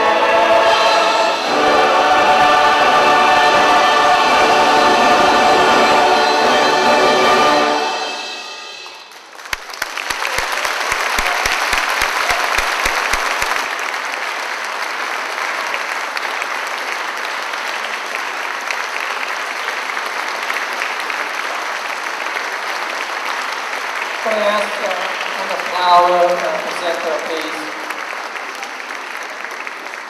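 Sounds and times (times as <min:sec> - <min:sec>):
large audience applauding: 0:08.8 - 0:30.0.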